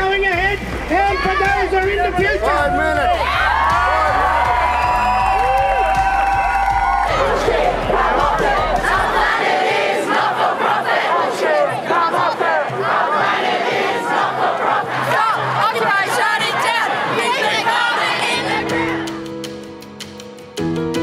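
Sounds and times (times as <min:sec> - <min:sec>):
crowd shouting and chanting: 0:00.0 - 0:19.4.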